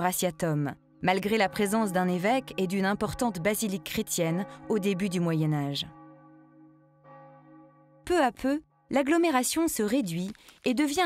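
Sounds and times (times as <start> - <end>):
sustained bell-like tones: 0.0 - 9.6.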